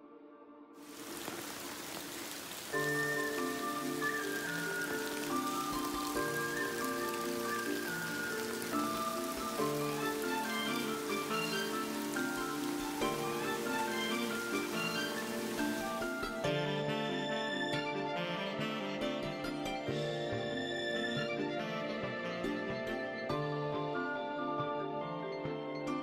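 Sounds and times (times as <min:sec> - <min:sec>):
background music melody: 0:00.0 - 0:26.0
steady rain hiss: 0:00.8 - 0:16.5.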